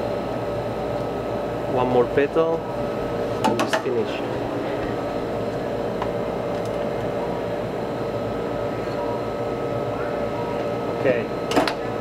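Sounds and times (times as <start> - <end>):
room machinery hum: 0.0 - 12.0.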